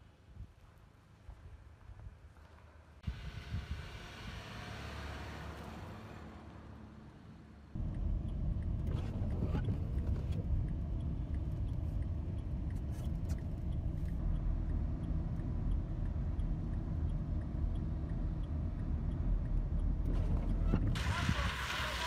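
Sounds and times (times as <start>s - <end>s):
car engine and tyres rumbling: 0.0s - 22.0s
faint regular ticking: 7.8s - 20.1s.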